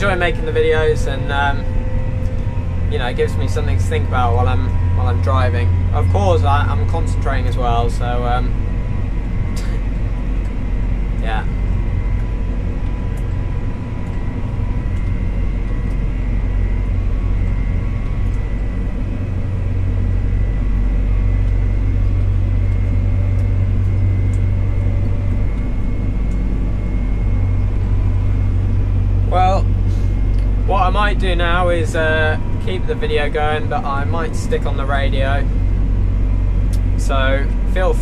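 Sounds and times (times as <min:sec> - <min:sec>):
faint high whine: 0:00.0 - 0:38.0
tractor engine low drone: 0:00.0 - 0:38.0.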